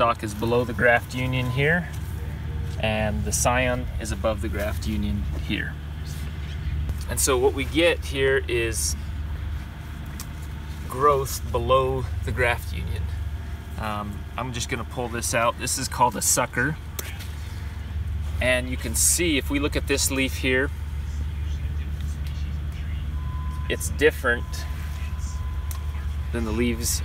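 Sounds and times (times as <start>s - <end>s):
low background rumble: 0.0s - 27.0s
vehicle engine humming: 0.0s - 27.0s.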